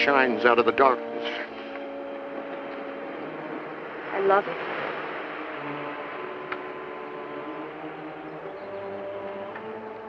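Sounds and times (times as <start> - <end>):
ocean surf: 0.0 - 10.0.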